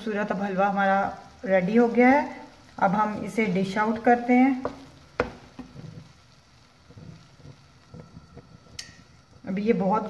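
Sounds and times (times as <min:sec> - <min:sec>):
spatula scraping pan: 0:04.0 - 0:10.0
wooden spatula knocking pan: 0:04.5 - 0:06.2.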